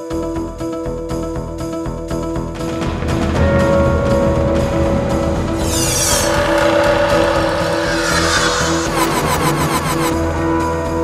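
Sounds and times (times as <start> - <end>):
dramatic title music: 2.4 - 11.0.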